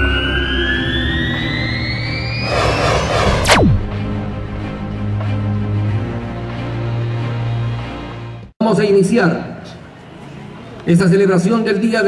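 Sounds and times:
synth tone rising in pitch: 0.0 - 4.4.

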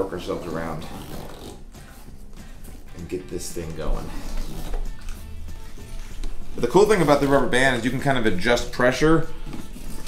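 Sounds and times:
background music: 0.0 - 10.0
rubber band rubbing and stretching: 0.4 - 2.9, 3.9 - 7.3.

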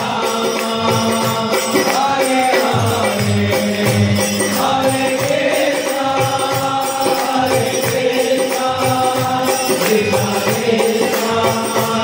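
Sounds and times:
group singing a chant: 0.0 - 12.0
rhythmic hand-clapping: 0.0 - 12.0
low drum beat: 2.7 - 4.2.

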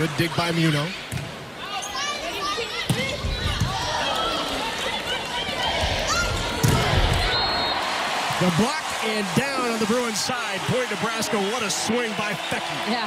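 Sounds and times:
arena noise: 0.0 - 13.0
volleyball struck: 6.3 - 7.4.

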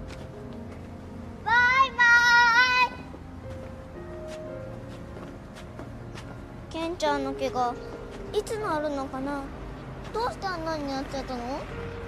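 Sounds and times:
girl singing high notes: 1.4 - 3.1.

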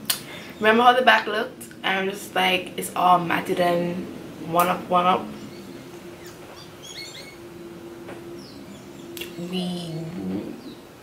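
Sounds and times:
steady low hum: 0.0 - 11.0
high bird-like chirps: 5.4 - 10.0.

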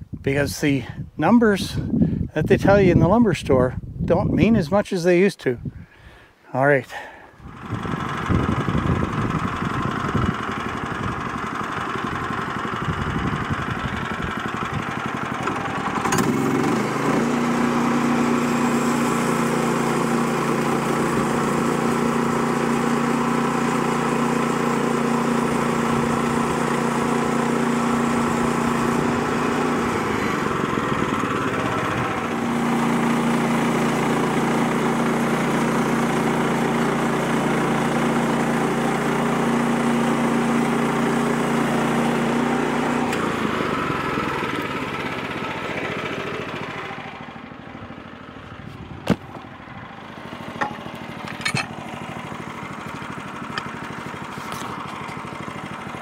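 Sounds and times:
sawmill gas engine running: 6.9 - 56.0
band blade cutting log: 49.0 - 49.5, 53.5 - 55.2.

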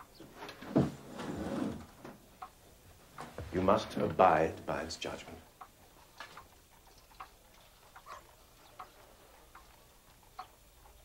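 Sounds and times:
faint slow ticking: 2.3 - 11.0.

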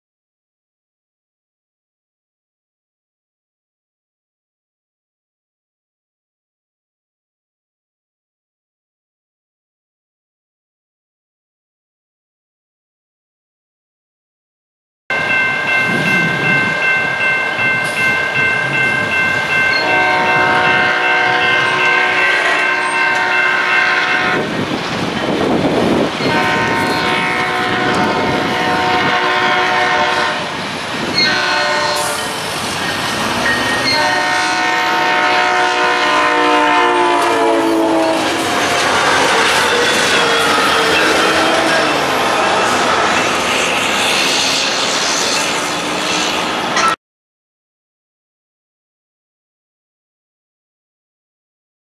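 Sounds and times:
crossing bell ringing: 15.1 - 24.4, 30.6 - 35.6, 37.3 - 44.1
train rumble and wheel clatter: 15.1 - 47.0
train horn blasts: 19.7 - 24.5, 26.2 - 30.6, 31.2 - 32.4, 33.8 - 43.3.

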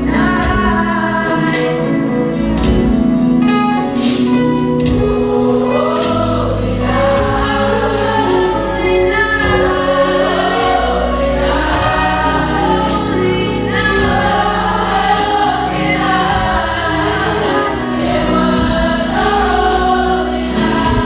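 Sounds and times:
gospel choir singing: 0.0 - 21.0.

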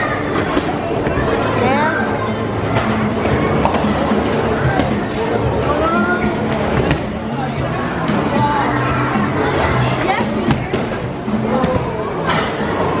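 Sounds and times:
crowd chatter: 0.0 - 13.0
music playing: 1.1 - 13.0.

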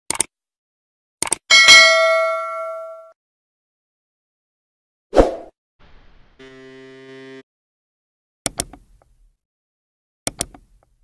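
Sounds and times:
buzzing electronic tone: 6.4 - 7.4.

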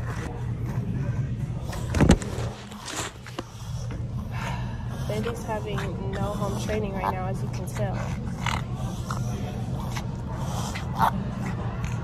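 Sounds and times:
low background hum: 0.0 - 12.0
small dog vocal noises: 4.9 - 12.0.

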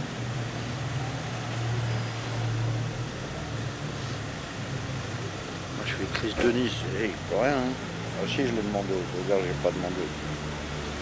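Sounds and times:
outdoor street noise: 0.0 - 11.0.

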